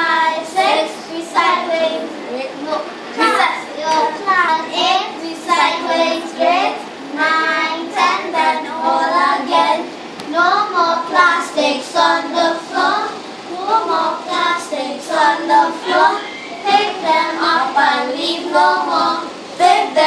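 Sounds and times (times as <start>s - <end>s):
children singing: 0.0s - 20.0s.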